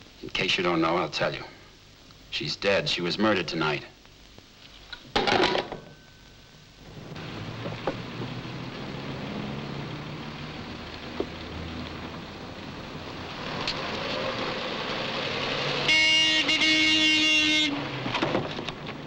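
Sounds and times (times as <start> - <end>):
outdoor traffic noise: 6.6 - 19.0
vehicle horn blast: 15.8 - 18.0.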